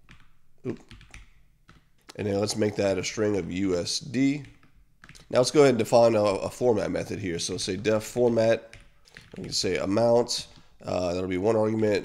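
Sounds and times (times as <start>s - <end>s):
computer keyboard keys clicking: 0.9s - 1.8s, 4.4s - 5.3s.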